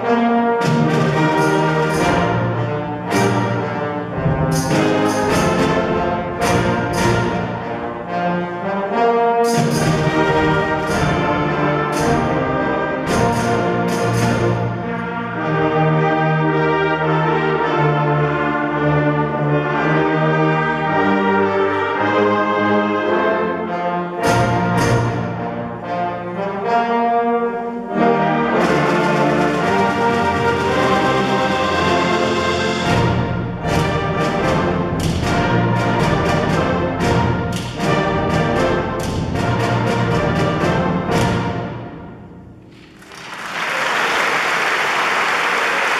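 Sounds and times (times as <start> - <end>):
trombones: 0.0 - 43.7
concert band playing brass: 0.0 - 45.9
percussion hits: 0.6 - 7.9, 9.4 - 15.0, 24.2 - 25.6, 28.6 - 43.6.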